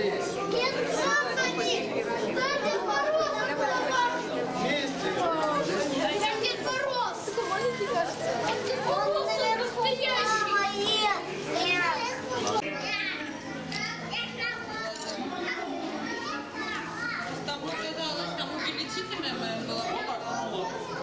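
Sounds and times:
children talking and calling out: 0:00.0 - 0:21.0.

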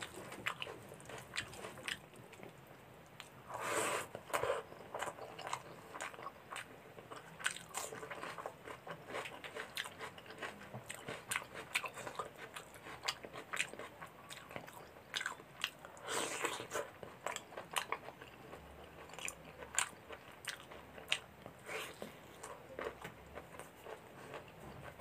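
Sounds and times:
wet chewing: 0:00.0 - 0:03.4, 0:04.1 - 0:25.0.

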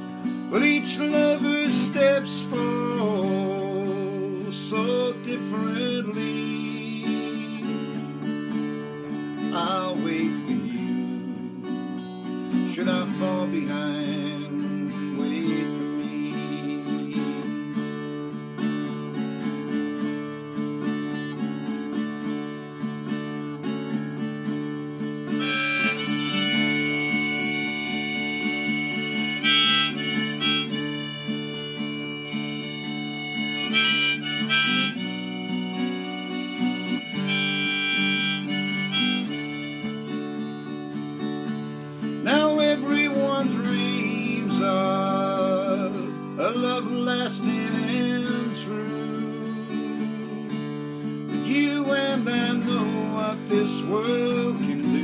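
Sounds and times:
harmonica solo: 0:00.0 - 0:08.3, 0:25.3 - 0:41.9
strummed acoustic guitar: 0:00.0 - 0:55.0.

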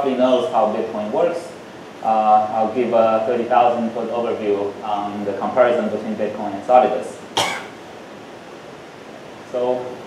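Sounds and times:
low room noise: 0:00.0 - 0:10.0
person coughing: 0:07.4 - 0:07.8.

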